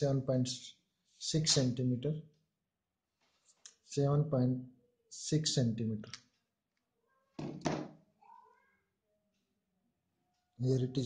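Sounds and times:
knocks on desk: 7.4 - 8.0.

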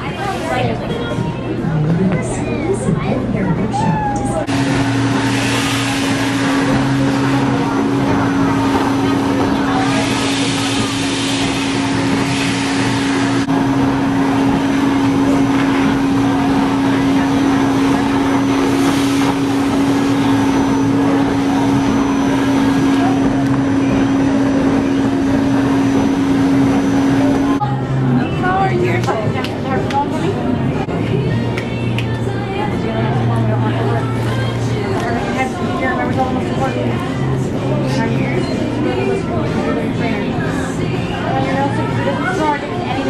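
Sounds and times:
stuffing machine blower humming: 0.0 - 43.0
rushing air: 4.5 - 27.6.

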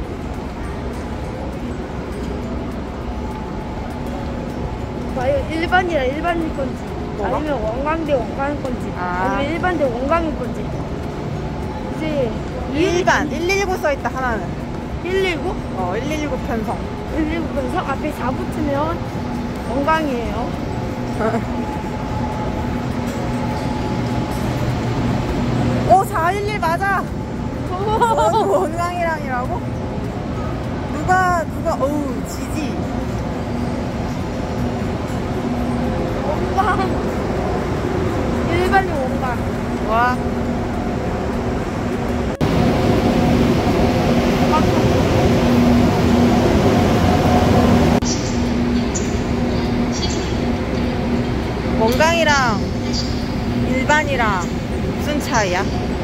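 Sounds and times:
train hum and fan noise: 0.0 - 56.0.

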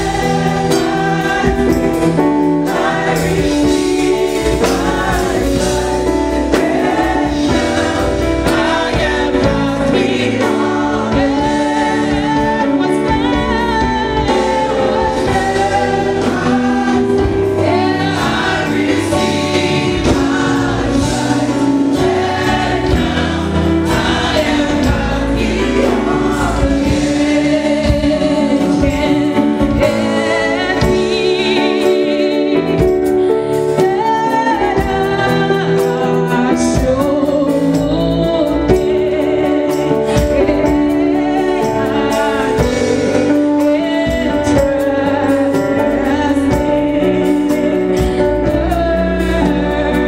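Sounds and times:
gospel choir singing: 0.0 - 50.0
live band playing: 0.0 - 50.0.

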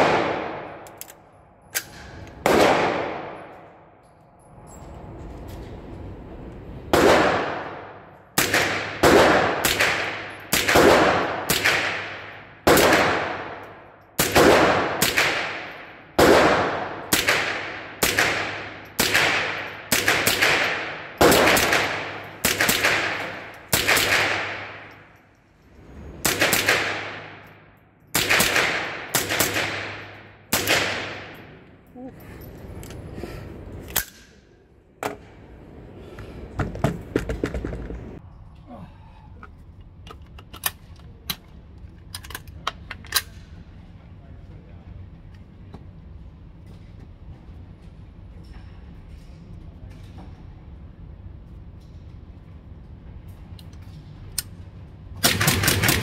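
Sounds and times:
rifle shots indoors: 0.0 - 4.4, 6.8 - 31.8, 53.6 - 56.0.

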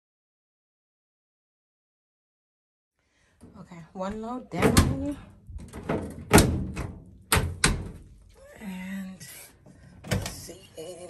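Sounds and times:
washing machine lid clunks: 4.5 - 8.1.

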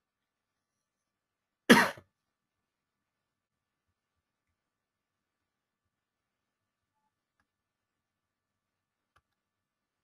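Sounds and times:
person coughing: 1.7 - 2.1.

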